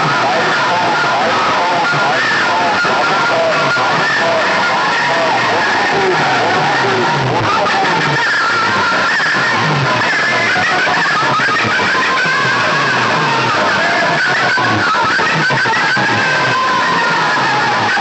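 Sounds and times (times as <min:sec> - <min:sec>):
loud music through horn loudspeakers: 0:00.0 - 0:18.0.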